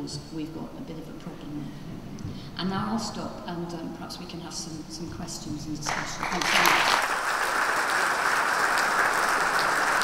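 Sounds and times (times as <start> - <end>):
audience applauding: 5.9 - 10.0.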